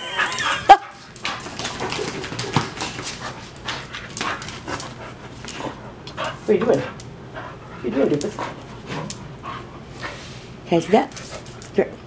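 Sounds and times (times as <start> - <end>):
dog breathing and snuffling: 1.7 - 11.7.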